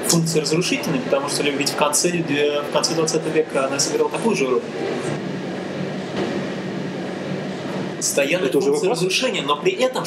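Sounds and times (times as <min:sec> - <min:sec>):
room rumble: 0:00.0 - 0:10.0.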